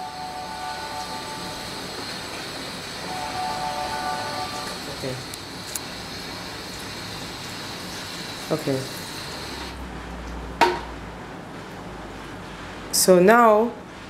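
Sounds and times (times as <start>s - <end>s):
faint held musical tones: 0.0s - 5.3s
sprayer water running into sink: 5.4s - 9.8s.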